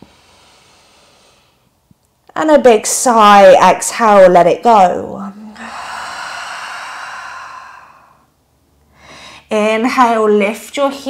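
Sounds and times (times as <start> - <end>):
woman sighing: 5.2 - 8.2.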